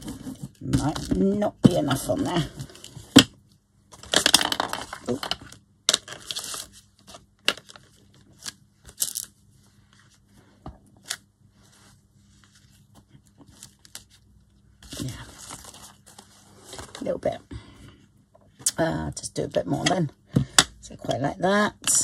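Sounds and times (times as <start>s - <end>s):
paper rustling and sliding: 6.1s - 9.0s, 14.8s - 17.1s.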